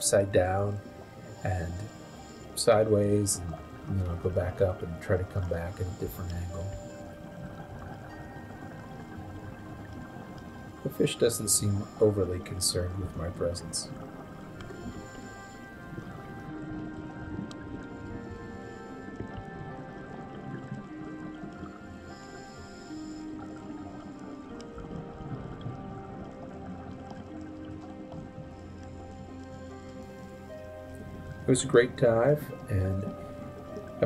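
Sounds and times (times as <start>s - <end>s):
soft background music: 0.0s - 34.0s.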